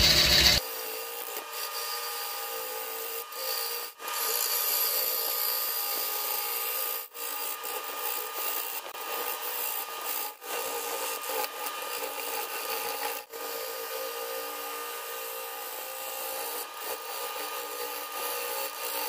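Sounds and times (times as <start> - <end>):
wood lathe running: 0.0 - 0.6.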